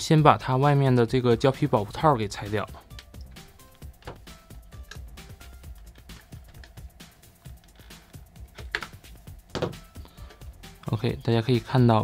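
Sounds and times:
quiet background music: 0:00.0 - 0:12.0
rubber holster clicks and rubbing: 0:08.4 - 0:09.8.

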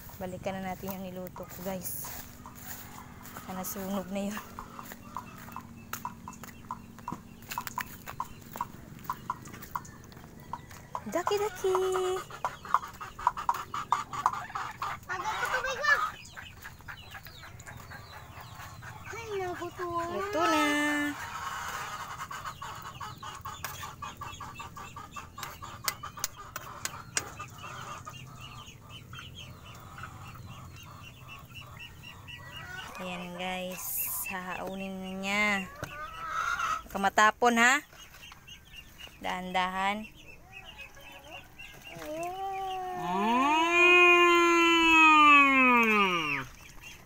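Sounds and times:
chickens clucking: 0:00.0 - 0:47.0.

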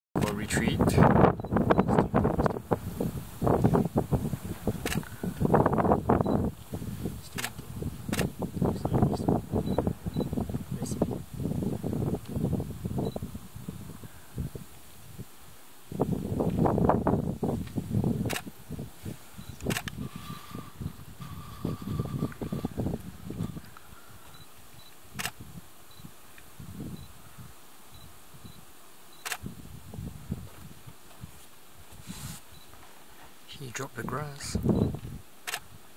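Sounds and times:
low muffled sound: 0:00.2 - 0:14.6
camera shutter clicks: 0:04.8 - 0:05.1, 0:07.4 - 0:08.3, 0:18.2 - 0:18.5, 0:19.6 - 0:20.0, 0:25.2 - 0:25.4, 0:29.2 - 0:29.4, 0:35.4 - 0:35.7.

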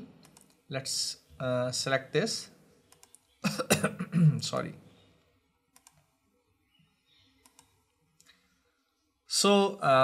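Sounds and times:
faint computer mouse clicks: 0:00.2 - 0:00.6, 0:02.9 - 0:03.3, 0:05.7 - 0:06.1, 0:07.4 - 0:08.4.

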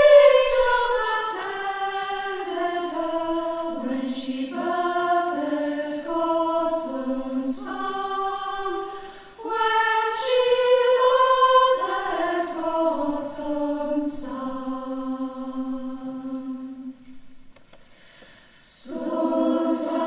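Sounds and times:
mixed choir singing a carol: 0:00.0 - 0:17.2, 0:18.6 - 0:20.0.

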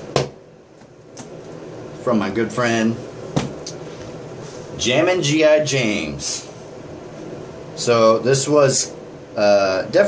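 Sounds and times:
tap on cardboard box: 0:03.4 - 0:03.6.

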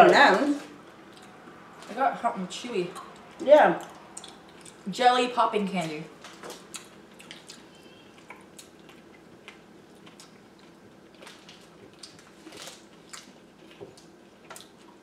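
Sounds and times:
mouth clicks and smacks: 0:03.0 - 0:04.8
chewing chocolate: 0:03.0 - 0:04.9, 0:06.4 - 0:15.0.

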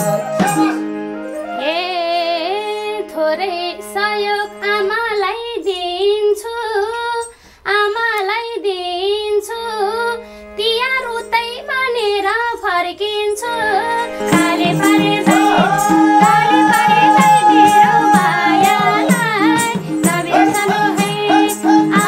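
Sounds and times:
harmonium notes: 0:00.0 - 0:07.3, 0:09.3 - 0:22.0
woman singing folk song: 0:01.6 - 0:22.0.

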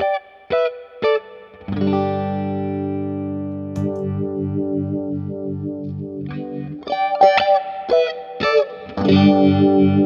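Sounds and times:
throbbing electric guitar: 0:00.0 - 0:10.0.

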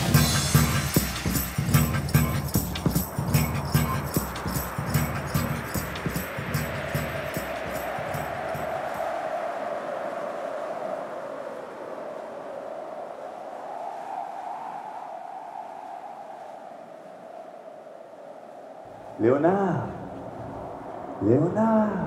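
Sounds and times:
hissing drone with low hum: 0:00.0 - 0:08.6.

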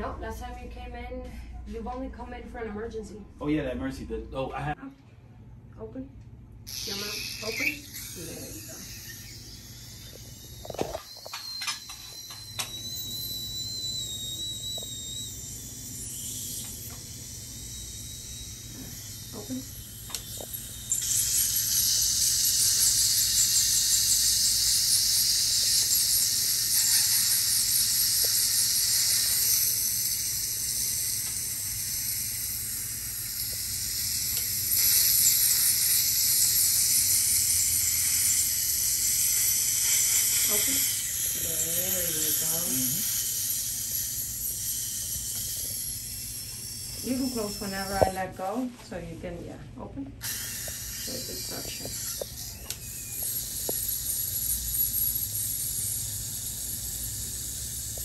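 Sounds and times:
dental scaler water spray hiss: 0:06.7 - 0:48.6, 0:50.2 - 0:58.0
saliva ejector suction hiss: 0:13.8 - 0:48.3, 0:50.2 - 0:58.0.

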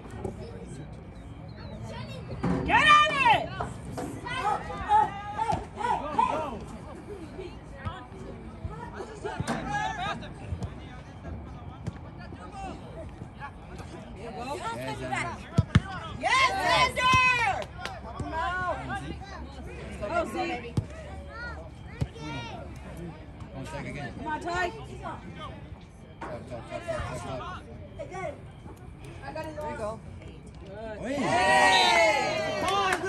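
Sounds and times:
people shouting calls: 0:02.6 - 0:03.6, 0:16.1 - 0:17.7, 0:31.0 - 0:33.0.

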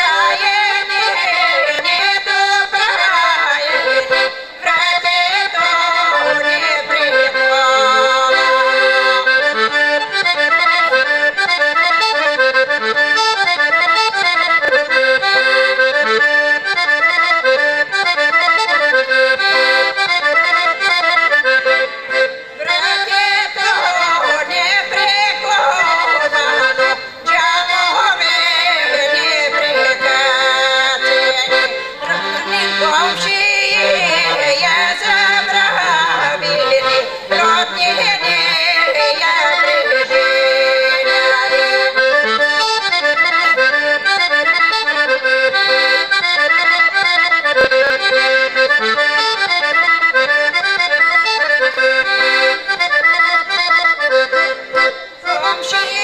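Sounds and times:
woman singing: 0:00.0 - 0:09.1, 0:22.6 - 0:42.0, 0:55.4 - 0:56.0
piano accordion folk tune: 0:00.0 - 0:56.0.

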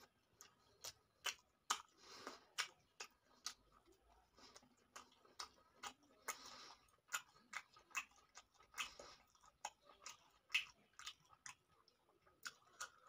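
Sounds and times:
person chewing close to microphone: 0:00.0 - 0:13.0.

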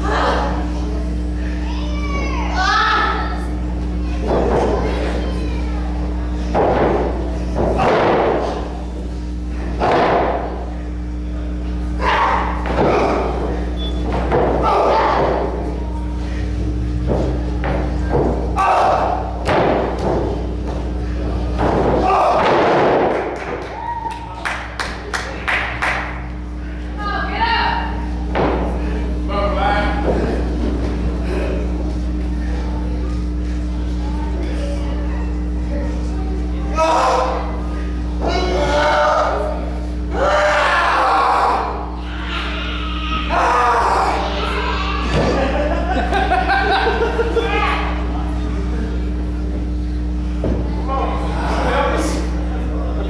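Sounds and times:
low electrical hum: 0:00.0 - 0:53.0.

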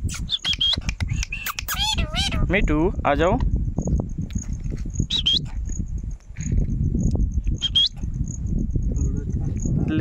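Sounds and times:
parakeet squawking: 0:01.4 - 0:02.5.

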